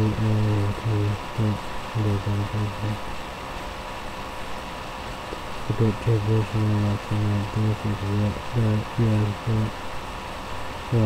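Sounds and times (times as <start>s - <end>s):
man chanting: 0.0s - 3.0s, 5.7s - 9.7s.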